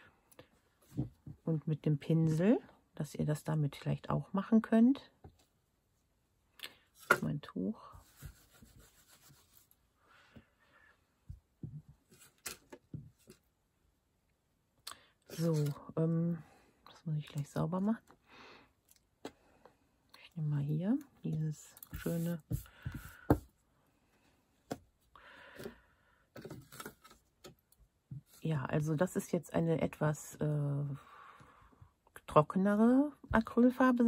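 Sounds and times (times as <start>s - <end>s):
wipe rustling as rubbed: 8.0s - 9.7s.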